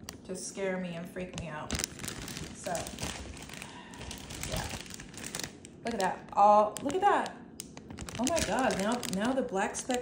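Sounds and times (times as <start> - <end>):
plastic bag crinkling: 1.2 - 10.0.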